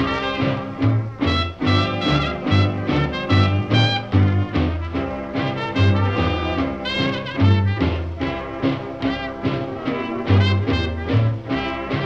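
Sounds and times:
jazz orchestra playing swing: 0:00.0 - 0:12.0.

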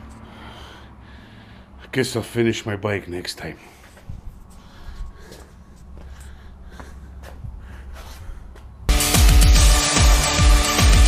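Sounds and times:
faint scuffs and clicks: 0:03.7 - 0:08.8
loud electronic music: 0:08.9 - 0:11.0.

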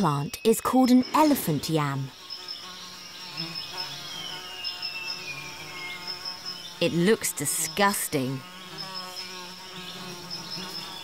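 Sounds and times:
flies buzzing: 0:00.0 - 0:11.0.

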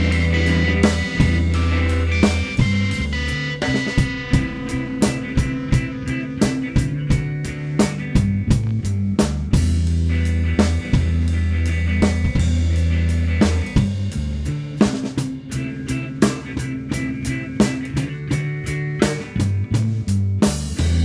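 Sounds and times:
drum hits: 0:00.0 - 0:09.8
deep held bass note: 0:00.0 - 0:10.1
rock music: 0:00.0 - 0:21.0.

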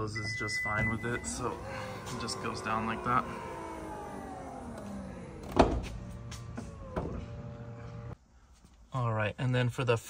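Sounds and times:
electric motor whining: 0:00.9 - 0:08.2
liftgate thump: 0:04.8 - 0:07.4.

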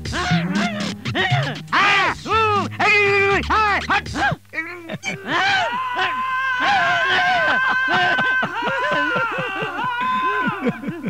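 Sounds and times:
background music: 0:00.0 - 0:05.2
man making comic vocal sounds: 0:00.0 - 0:05.9.

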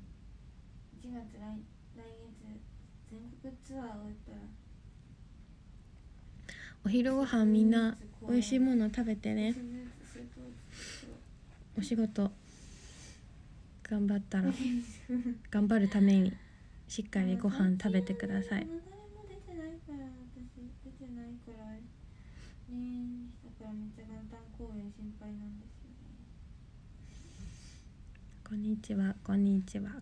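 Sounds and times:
low room noise: 0:00.0 - 0:30.0
woman talking: 0:01.0 - 0:04.6, 0:06.8 - 0:12.4, 0:13.8 - 0:18.7, 0:22.7 - 0:26.3, 0:28.4 - 0:30.0
woman breathing in: 0:06.4 - 0:06.8, 0:12.4 - 0:13.3, 0:22.0 - 0:22.7, 0:27.0 - 0:28.0
woman humming softly: 0:17.2 - 0:21.8.

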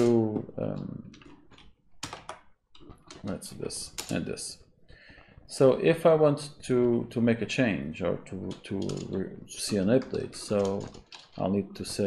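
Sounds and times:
computer keyboard keystrokes: 0:00.0 - 0:04.2, 0:08.5 - 0:11.4.

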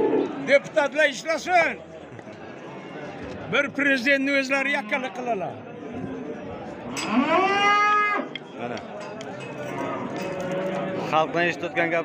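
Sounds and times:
young cattle mooing: 0:07.0 - 0:08.3.

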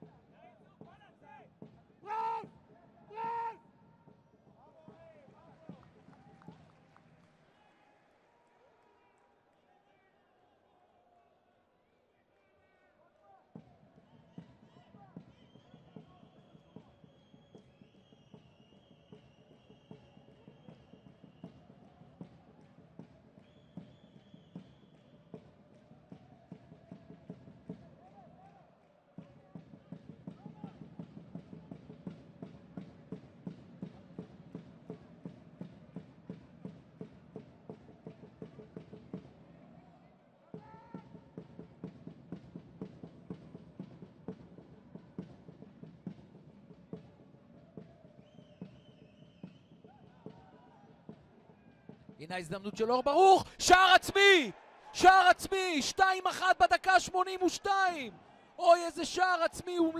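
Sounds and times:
loud shouts: 0:02.0 - 0:03.7, 0:52.3 - 0:59.9
players calling: 0:52.3 - 0:59.9.

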